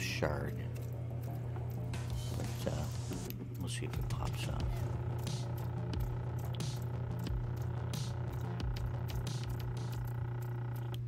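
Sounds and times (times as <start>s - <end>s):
machine motor humming: 0.0s - 11.0s.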